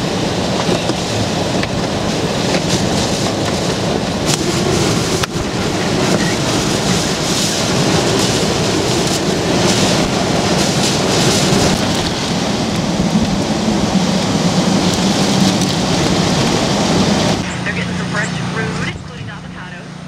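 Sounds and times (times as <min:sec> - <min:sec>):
heavy rain: 0:00.0 - 0:20.0
strong gusting wind: 0:00.0 - 0:20.0
wind buffeting microphone: 0:00.0 - 0:20.0
low steady hum: 0:17.4 - 0:20.0.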